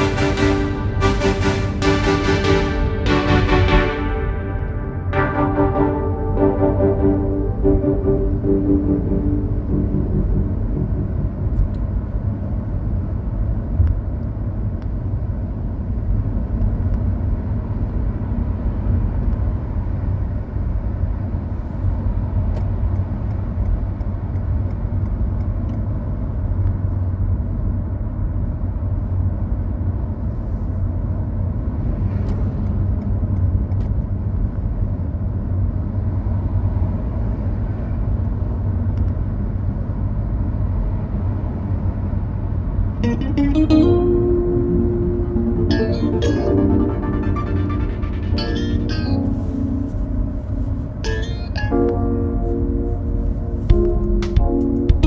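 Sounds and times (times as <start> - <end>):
car driving at speed: 4.0 - 43.0.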